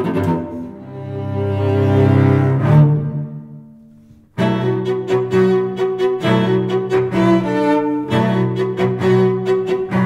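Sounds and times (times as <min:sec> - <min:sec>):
cello rock instrumental: 0:00.0 - 0:10.0.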